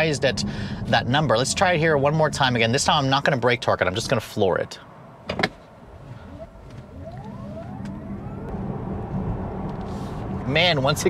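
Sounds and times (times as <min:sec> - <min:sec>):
road and wind noise: 0:00.0 - 0:11.0.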